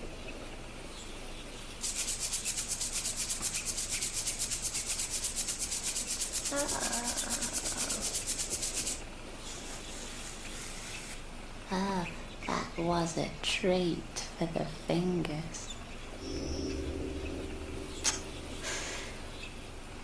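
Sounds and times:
fingers rasping along cage bars: 1.9 - 9.0.

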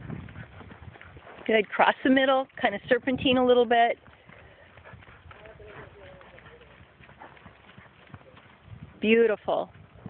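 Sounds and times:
horse hoofbeats on sand: 0.0 - 10.0.

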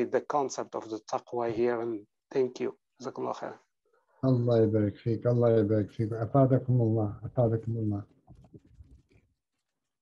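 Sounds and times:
voice trailing off: 4.2 - 8.0.

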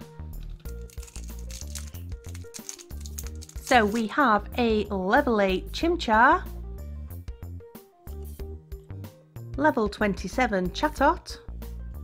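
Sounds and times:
background music with low line: 0.0 - 12.0
foil pack crinkling and tearing: 0.6 - 4.0.

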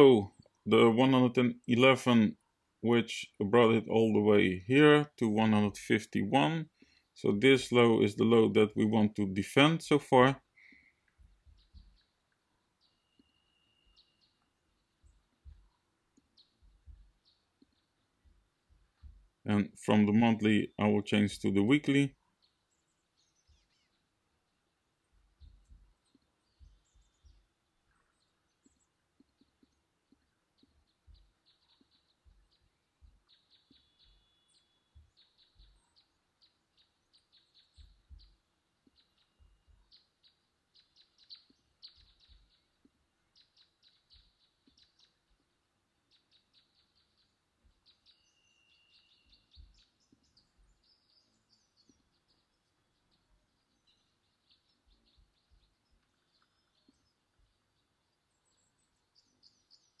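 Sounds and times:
soft low knocks: 11.2 - 12.1, 15.0 - 15.9, 16.5 - 19.5, 25.2 - 27.5.

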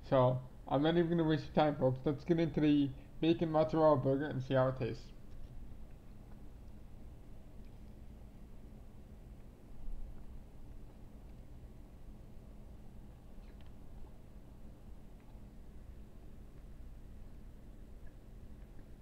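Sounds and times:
steady low hum: 0.0 - 19.0
person chewing: 13.4 - 14.2.

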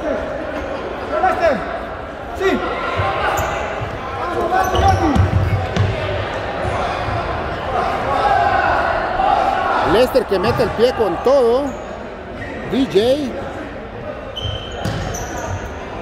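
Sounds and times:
spectators chatting: 0.0 - 16.0
players shouting: 2.4 - 11.8.

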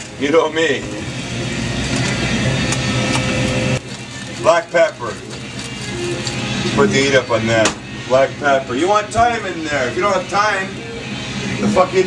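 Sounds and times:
mechanical motor hum: 0.0 - 12.0.

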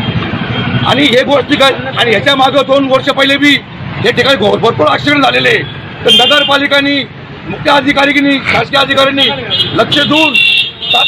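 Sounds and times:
road traffic: 0.0 - 11.0
man speaking loudly: 0.8 - 11.0.

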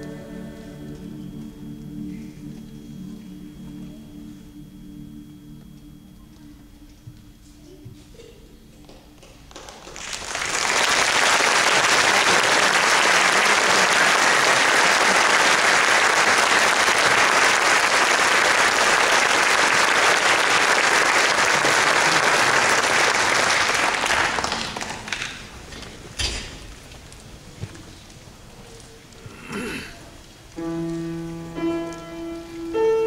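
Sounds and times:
audience applauding: 9.5 - 25.6.

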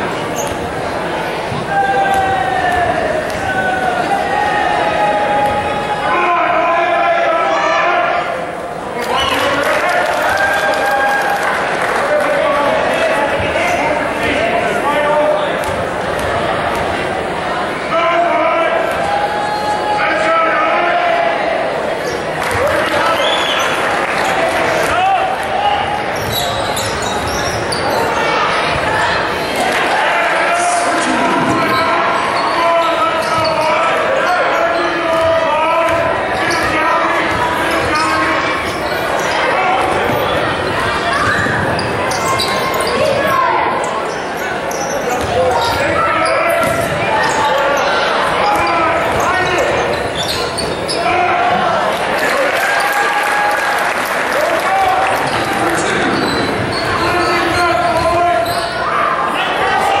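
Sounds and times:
crowd voices echoing: 0.0 - 60.0.

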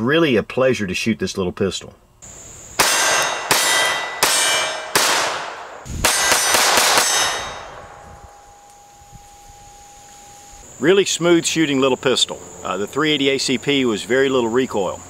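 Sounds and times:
pistol shots with ringing tail: 2.8 - 8.7.

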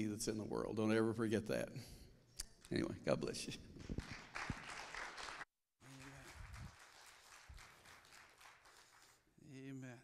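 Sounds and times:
congregation applauding: 3.8 - 9.3.

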